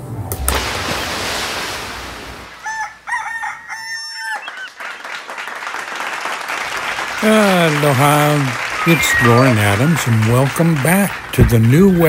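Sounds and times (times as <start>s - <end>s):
rooster crowing: 2.6s - 4.8s.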